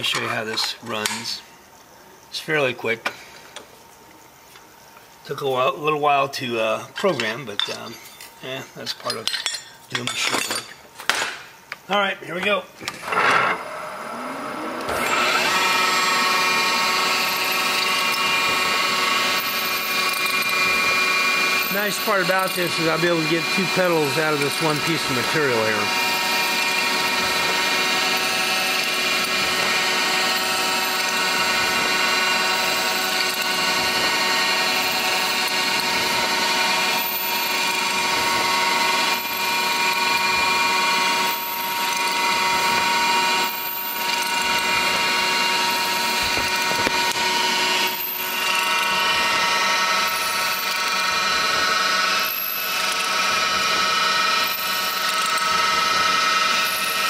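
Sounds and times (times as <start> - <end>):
milling machine spindle whine: 12.8 - 57.0
metal cutting noise: 12.9 - 57.0.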